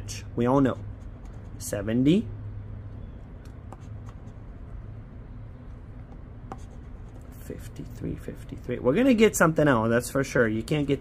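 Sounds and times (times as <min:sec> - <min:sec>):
low steady hum: 0:00.0 - 0:11.0
scratching lottery ticket: 0:00.5 - 0:01.8.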